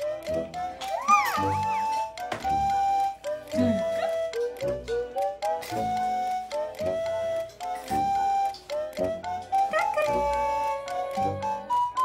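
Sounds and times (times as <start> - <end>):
simple melody playing: 0.0 - 12.0
baby squealing: 0.9 - 1.9.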